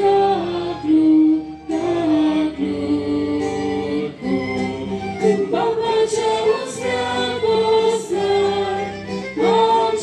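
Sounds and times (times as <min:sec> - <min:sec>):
voices singing a hymn in unison: 0:00.0 - 0:10.0.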